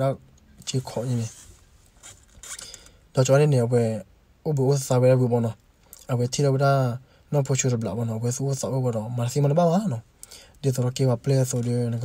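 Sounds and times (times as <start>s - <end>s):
person narrating: 0.0s - 1.5s.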